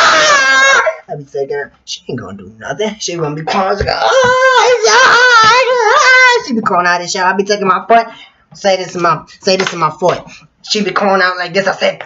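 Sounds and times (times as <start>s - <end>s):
man's falsetto wailing scream: 0.0s - 1.0s, 4.0s - 6.5s.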